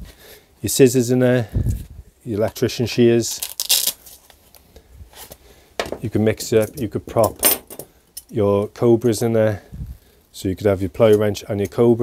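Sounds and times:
person speaking: 0:05.8 - 0:07.6, 0:08.2 - 0:09.7.

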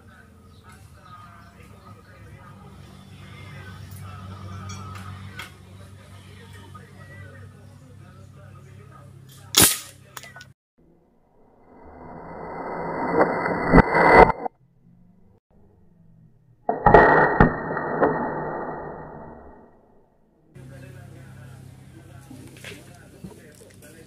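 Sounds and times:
air rifle shot: 0:09.6 - 0:09.9
dull noise with knocks: 0:16.7 - 0:19.5.

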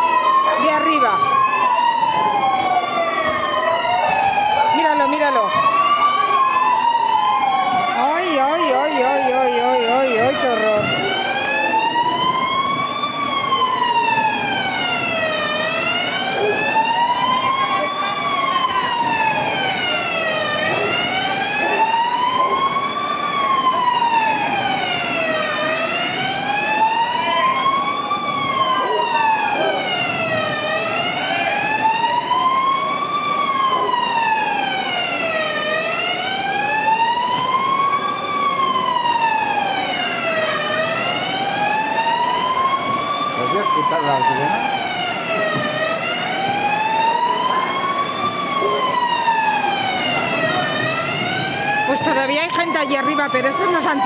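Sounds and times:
emergency vehicle siren wailing: 0:00.0 - 0:54.0.

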